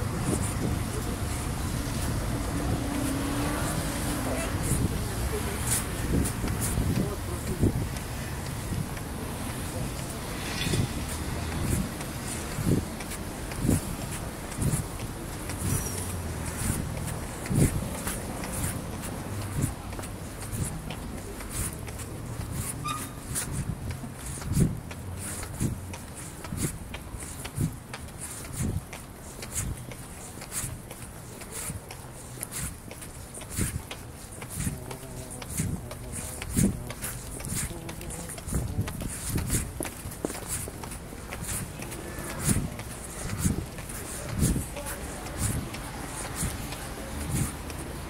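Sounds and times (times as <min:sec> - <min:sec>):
faint indistinct voices: 0:00.0 - 0:48.0.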